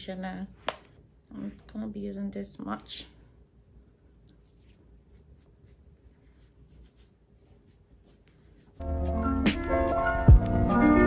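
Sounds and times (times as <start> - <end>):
fingers rubbing through hair: 4.3 - 8.8
background music with a beat: 8.8 - 11.0.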